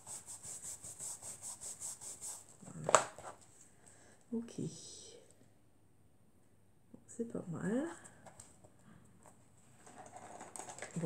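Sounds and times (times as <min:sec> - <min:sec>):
foam tool rubbing on card: 0:00.0 - 0:02.5.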